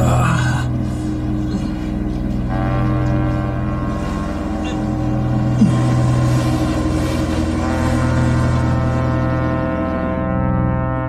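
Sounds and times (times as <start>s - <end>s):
brass-like low chords: 0.0s - 11.0s
deep low drone: 0.0s - 11.0s.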